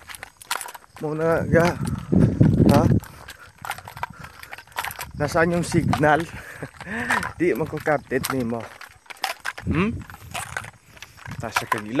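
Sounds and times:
light irregular clicks and taps: 0.0 - 12.0.

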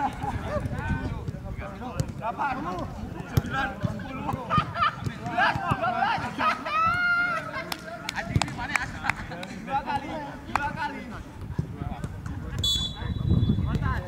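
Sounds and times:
footballs being kicked: 0.7 - 6.0
players calling out: 1.7 - 11.0
drawn-out shout: 5.4 - 7.7.

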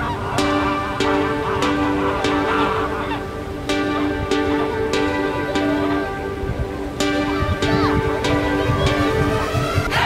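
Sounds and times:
background music with steady beat: 0.0 - 10.0
geese honking: 0.0 - 10.0.

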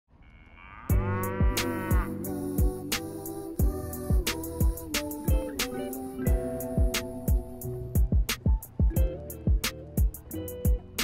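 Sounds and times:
cow mooing: 0.2 - 2.6
hip-hop beat: 0.9 - 11.0.

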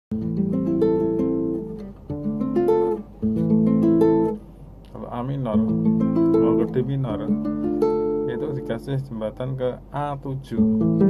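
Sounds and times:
fingerpicked nylon-string guitar: 0.1 - 11.0.

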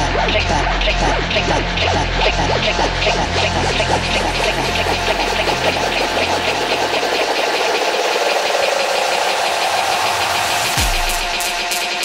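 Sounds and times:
electronic dance music build-up: 1.4 - 12.0.

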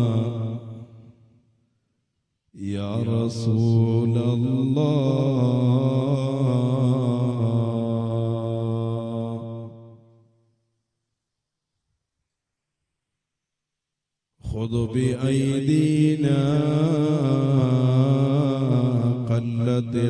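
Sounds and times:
man chanting devotional verse: 0.0 - 1.1, 2.6 - 10.0, 14.4 - 20.0.

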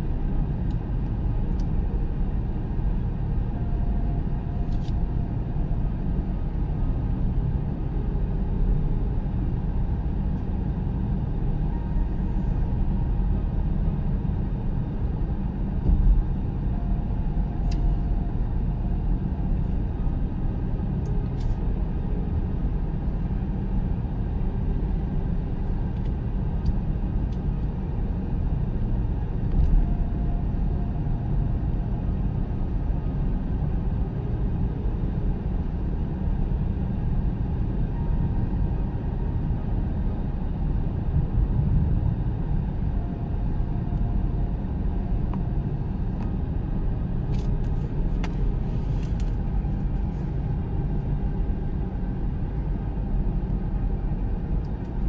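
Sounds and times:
car driving at highway speed: 0.0 - 55.0.

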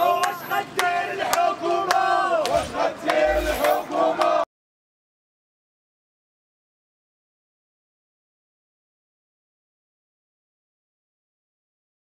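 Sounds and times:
crowd shouting slogans: 0.0 - 4.5
hand claps: 0.2 - 4.4.

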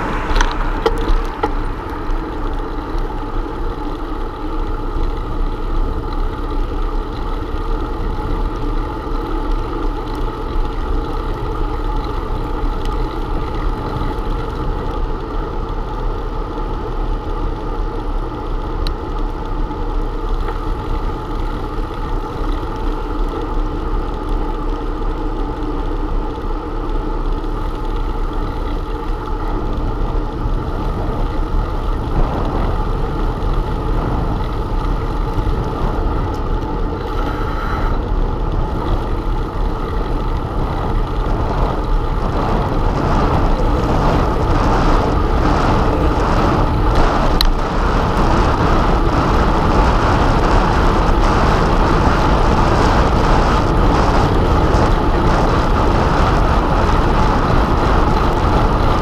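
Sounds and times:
wind noise on microphone: 0.0 - 23.7, 27.5 - 59.0
bicycle road noise: 0.0 - 59.0.

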